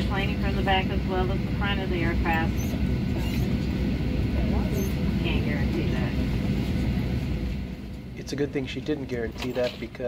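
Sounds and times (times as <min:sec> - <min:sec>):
cabin ventilation rumble: 0:00.0 - 0:10.0
faint passenger chatter: 0:00.0 - 0:10.0.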